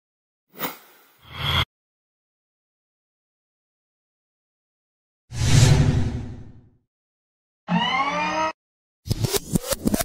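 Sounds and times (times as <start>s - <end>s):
rising synthesized tone: 7.7s - 8.6s.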